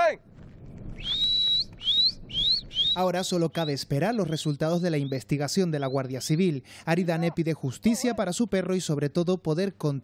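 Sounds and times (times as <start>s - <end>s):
man whistling for a dog: 1.0s - 3.0s.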